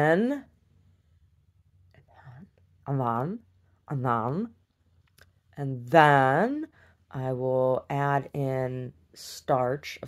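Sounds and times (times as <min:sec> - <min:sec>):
woman speaking: 0:00.0 - 0:00.6, 0:02.2 - 0:04.7, 0:05.5 - 0:10.0.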